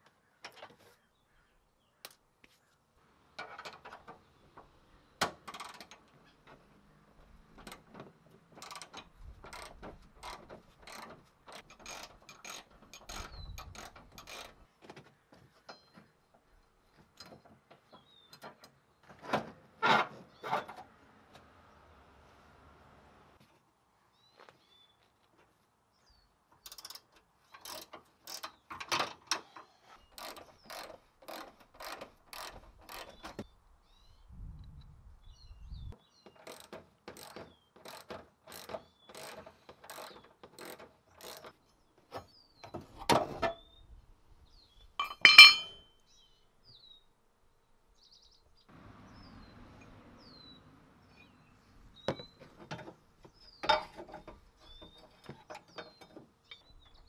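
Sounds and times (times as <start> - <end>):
hand ratchet clicking: 36.4 - 41.5.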